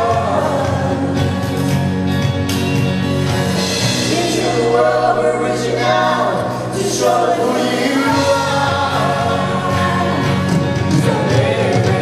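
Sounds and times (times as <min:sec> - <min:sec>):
voices singing together: 0:00.0 - 0:02.2, 0:03.7 - 0:12.0
electric bass: 0:00.0 - 0:12.0.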